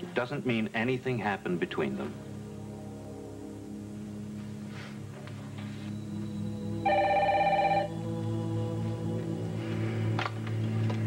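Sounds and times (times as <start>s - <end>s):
soft background music: 0.0s - 11.0s
telephone ringing: 6.8s - 7.9s.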